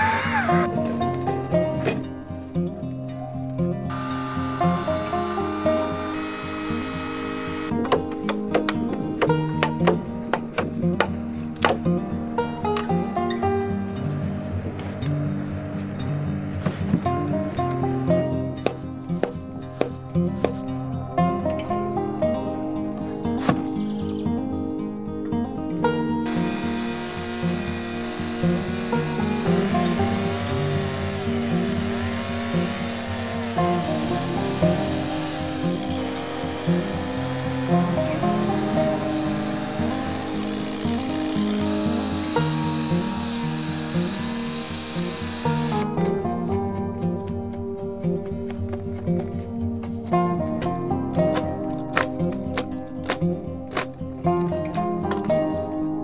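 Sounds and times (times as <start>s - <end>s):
chainsaw cutting log: 0.0s - 1.0s, 3.9s - 7.8s, 26.3s - 46.0s
background music with held notes: 0.0s - 56.0s.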